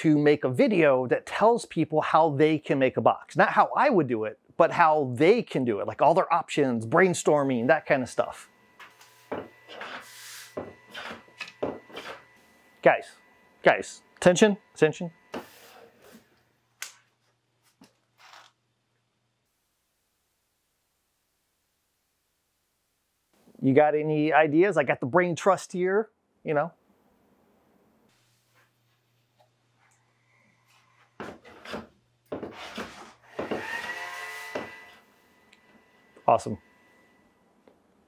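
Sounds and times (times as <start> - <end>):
high steady ringing tone: 7.2 - 15.4, 34.0 - 37.5.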